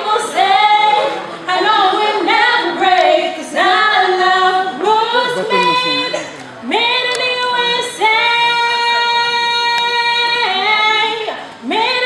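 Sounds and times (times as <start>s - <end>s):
female voices singing a cappella: 0.0s - 12.0s.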